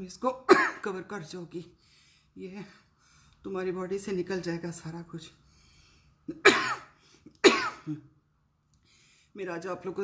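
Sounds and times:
woman coughing: 0.5 - 1.0, 6.3 - 8.1.

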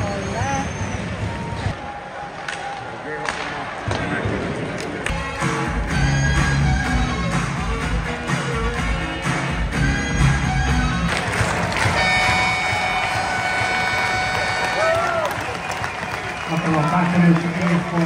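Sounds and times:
music over loudspeakers: 5.1 - 15.0.

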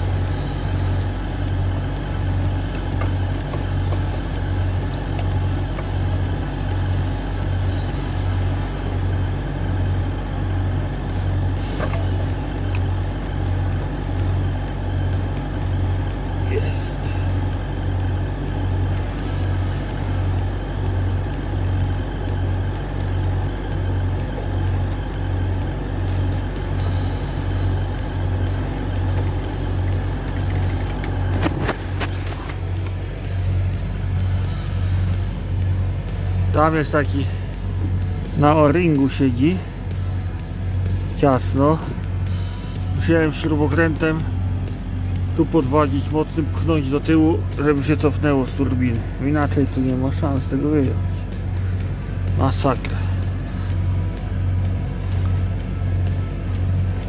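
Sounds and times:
throbbing mechanical hum: 0.0 - 57.0.

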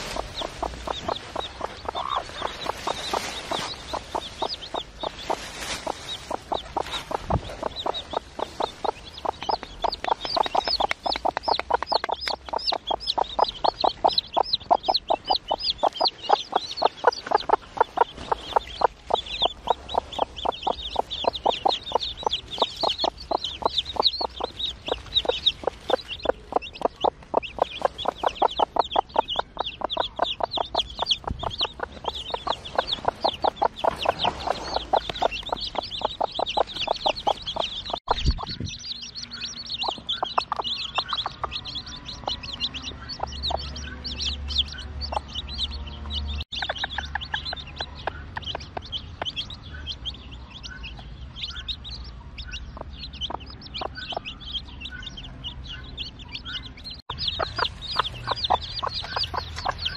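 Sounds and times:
chicks peeping: 0.0 - 59.9
hen clucking rapidly: 0.0 - 59.9.

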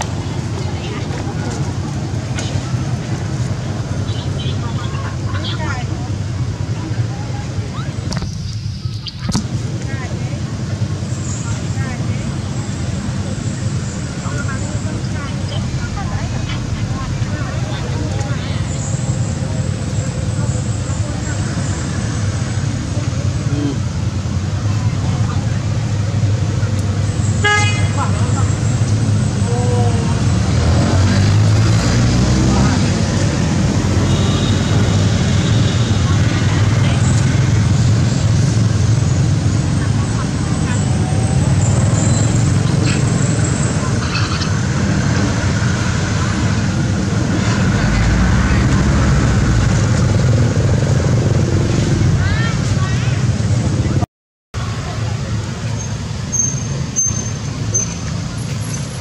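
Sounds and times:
people talking: 0.0 - 54.0, 54.6 - 59.0
road traffic: 0.0 - 59.0
vehicle horn tooting: 27.4 - 28.0.

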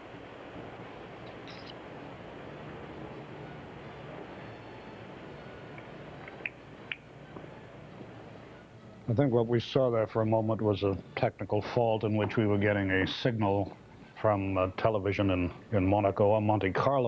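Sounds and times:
faint hiss with low hum: 0.0 - 17.0.

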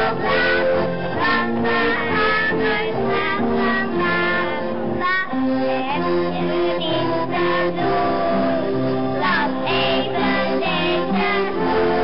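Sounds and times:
children singing: 0.0 - 12.0
instrumental accompaniment: 0.0 - 12.0.

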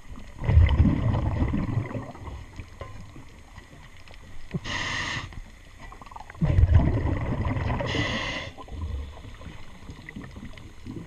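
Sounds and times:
diver's breath bubbling underwater: 0.4 - 2.3, 6.0 - 11.0.

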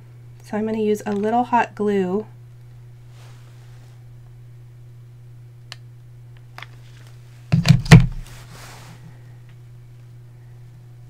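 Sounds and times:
steady low hum: 0.0 - 11.0
tools knocking on desk: 7.5 - 8.2.

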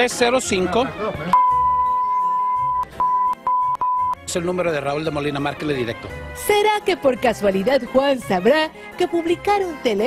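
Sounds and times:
censor bleep tone: 1.4 - 4.2.

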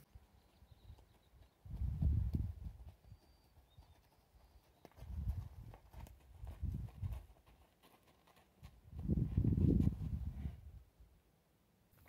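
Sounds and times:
horse hoofbeats on dirt: 0.3 - 10.5.

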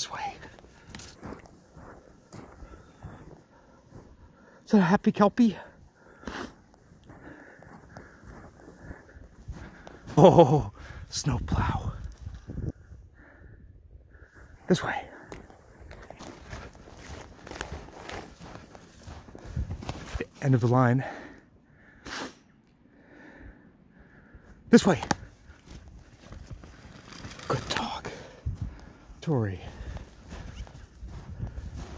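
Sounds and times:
footsteps crunching through snow: 0.0 - 10.6, 14.7 - 21.1, 24.8 - 31.9.

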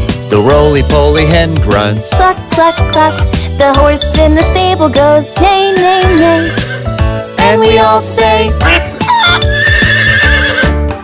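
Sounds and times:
children's song with beat: 0.1 - 9.5
horse whinnying: 5.7 - 7.0, 8.6 - 10.8.

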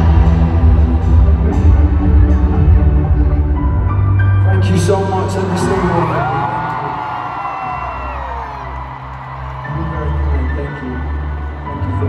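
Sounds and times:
heavy bass: 0.0 - 6.4
live band over loudspeakers: 0.0 - 12.0.

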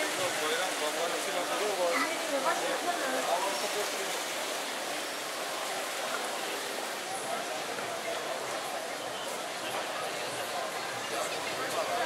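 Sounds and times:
faint crowd chatter: 0.0 - 12.0
fountain water splashing: 0.0 - 12.0.

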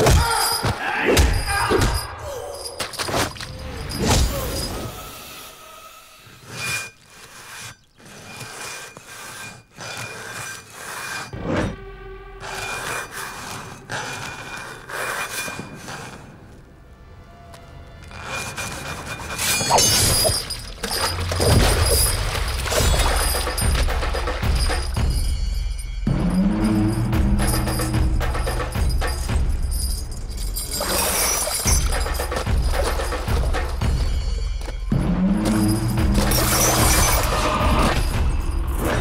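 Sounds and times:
dramatic background score: 11.2 - 39.0
heavy drums: 31.8 - 38.8.

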